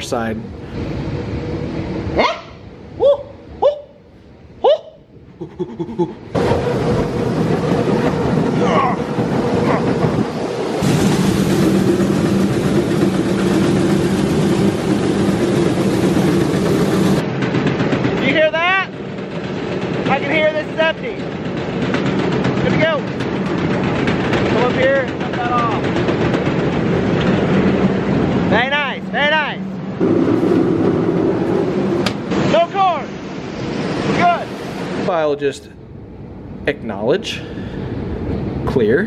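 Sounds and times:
low hum: 0.0 - 38.8
grain conveyor droning: 6.3 - 35.5.

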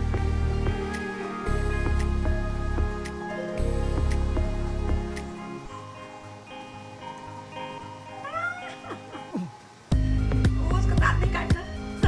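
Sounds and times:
soft guitar music: 0.0 - 12.0
baby squealing: 8.2 - 9.6.

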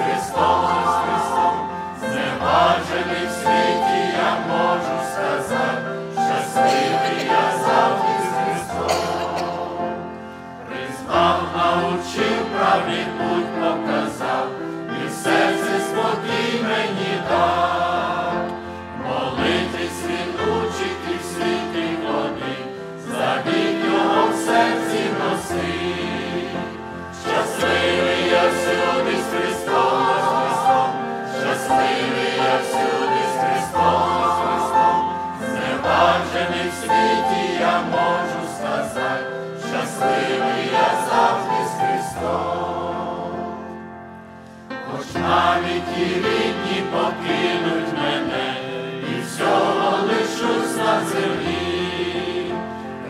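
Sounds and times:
church choir singing a hymn: 0.0 - 53.0.

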